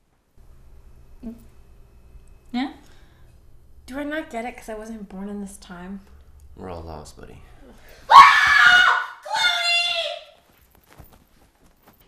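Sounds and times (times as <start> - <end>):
person screaming: 8.1 - 10.3.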